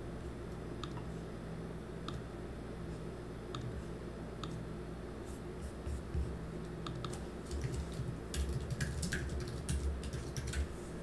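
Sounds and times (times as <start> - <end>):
computer keyboard key clicks: 6.9 - 10.7.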